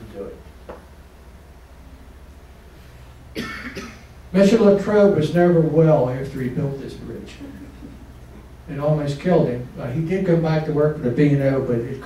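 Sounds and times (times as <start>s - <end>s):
man coughing: 3.3s - 4.1s.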